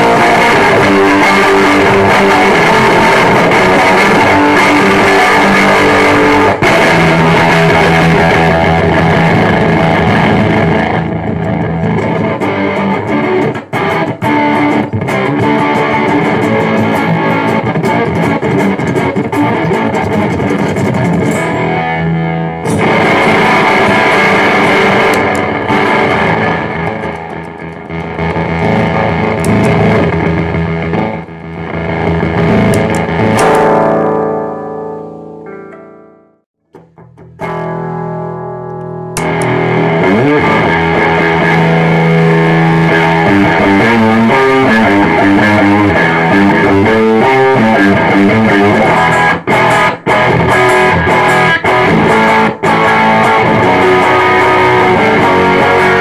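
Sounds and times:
distorted fuzz electric guitar riffs: 0:00.0 - 0:56.0.

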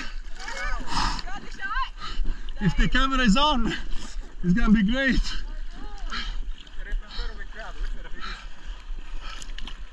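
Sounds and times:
water sloshing and splashing: 0:00.0 - 0:09.9.

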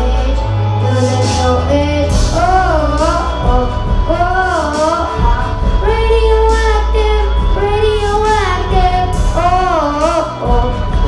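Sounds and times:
backing music with deep bass: 0:00.0 - 0:11.0
boy singing through microphone: 0:00.0 - 0:11.0.

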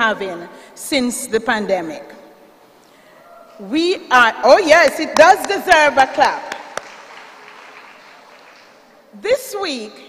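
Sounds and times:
faint applause: 0:06.5 - 0:09.1.

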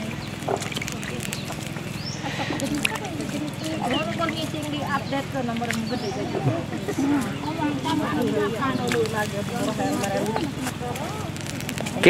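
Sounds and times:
background chatter of voices: 0:00.0 - 0:12.0
steady low hum: 0:00.0 - 0:12.0.

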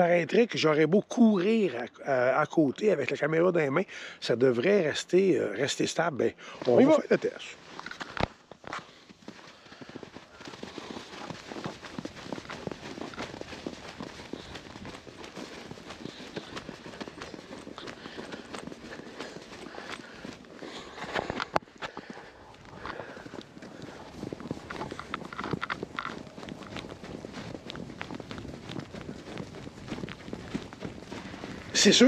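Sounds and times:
footsteps crunching in deep snow: 0:06.5 - 0:32.0.

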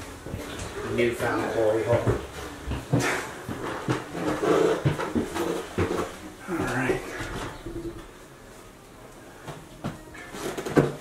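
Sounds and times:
footsteps climbing stairs: 0:00.2 - 0:08.2.

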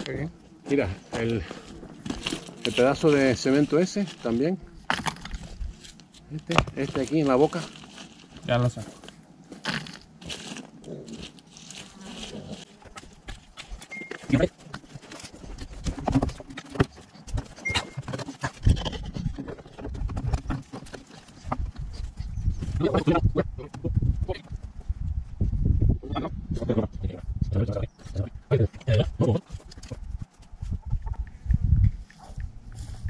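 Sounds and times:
rocks and earth scraping: 0:00.0 - 0:33.0.

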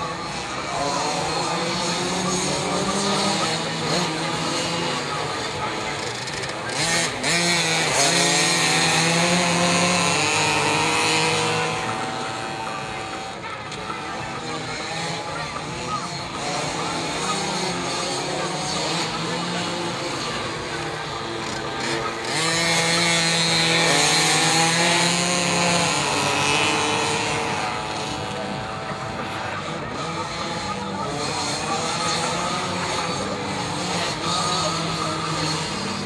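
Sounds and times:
motorcycle engines revving: 0:00.0 - 0:36.0.

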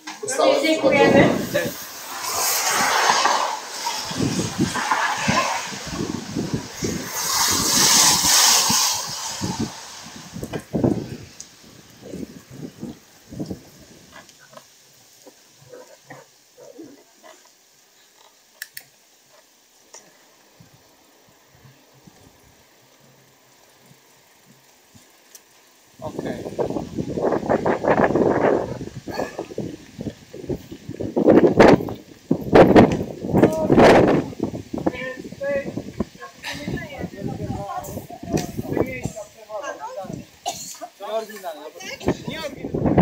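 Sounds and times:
tyres hissing on wet road: 0:00.0 - 0:43.0
wind buffeting microphone: 0:00.3 - 0:14.6, 0:26.0 - 0:40.5, 0:41.8 - 0:43.0
faint muffled bicycle rolling: 0:01.4 - 0:35.0.

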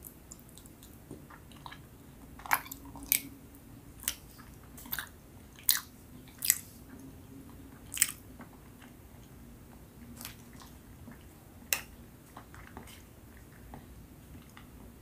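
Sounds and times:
mouth chewing sticky food: 0:00.0 - 0:09.3.

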